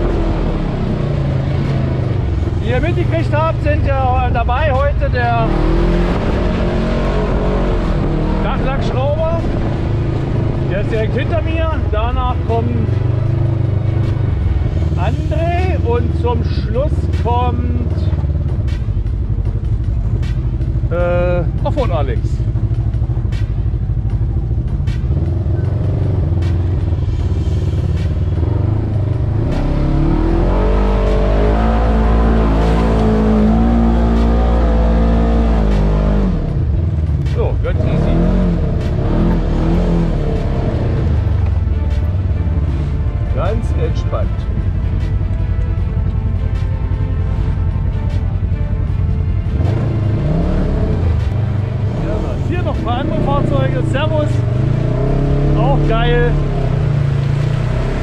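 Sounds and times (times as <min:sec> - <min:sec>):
vehicle engine revving under load: 0:00.0 - 0:19.2, 0:24.8 - 0:58.0.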